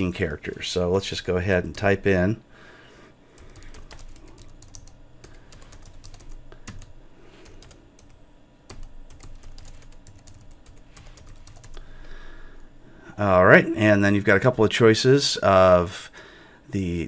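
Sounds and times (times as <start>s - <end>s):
typing on computer keyboard: 3.4s - 11.8s.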